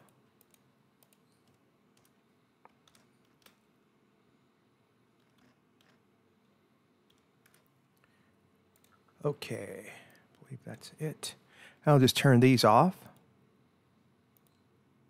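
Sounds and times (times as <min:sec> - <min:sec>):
keyboard typing: 0:00.0 - 0:03.6, 0:05.2 - 0:06.1, 0:07.1 - 0:07.7.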